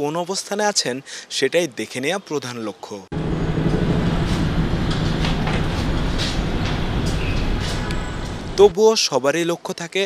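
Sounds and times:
rumbling hall noise: 0:03.2 - 0:08.7.

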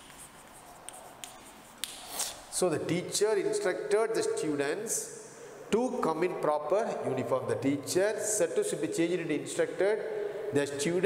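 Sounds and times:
chalk clicks on blackboard: 0:00.0 - 0:02.4
faint chalk scratching: 0:00.0 - 0:02.5.

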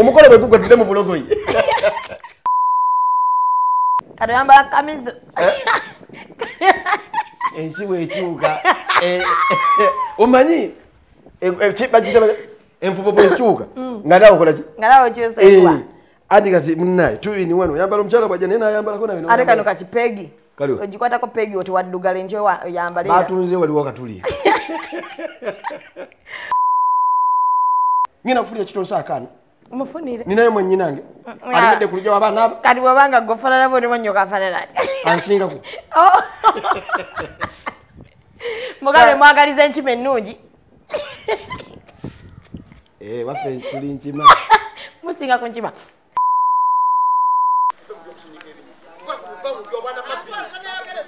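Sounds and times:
censor bleep: 0:02.5 - 0:04.0, 0:26.5 - 0:28.1, 0:46.2 - 0:47.8.

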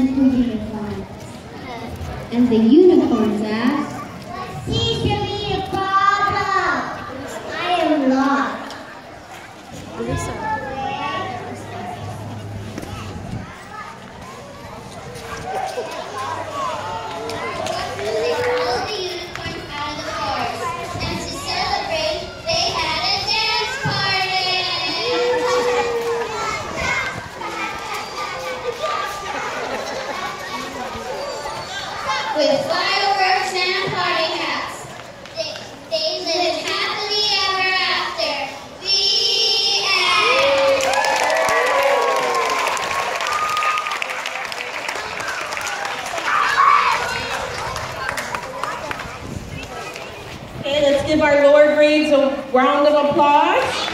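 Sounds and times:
young children's voices: 0:00.0 - 0:44.0, 0:44.9 - 0:53.9
audience applauding: 0:40.2 - 0:49.1.

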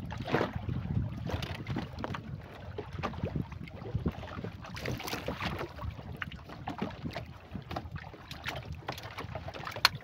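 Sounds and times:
water slapping against canoe hull: 0:00.0 - 0:10.0
wind rumbling on microphone: 0:00.0 - 0:10.0.

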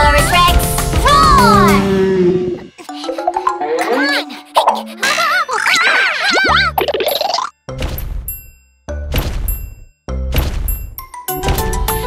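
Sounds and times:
cartoon music cue: 0:01.1 - 0:07.5
cartoon sound effects: 0:03.0 - 0:07.5.

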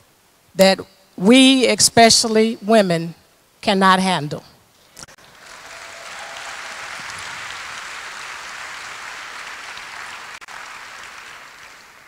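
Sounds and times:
audience applauding: 0:05.2 - 0:12.0.

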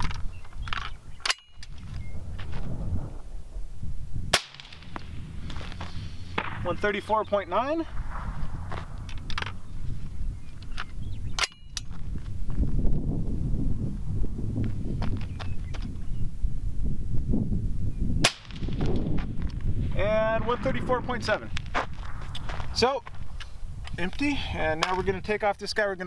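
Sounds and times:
wind rumble on microphone: 0:00.0 - 0:26.0
suppressed rifle shot: 0:04.3 - 0:07.0, 0:07.7 - 0:09.7, 0:18.2 - 0:19.2.

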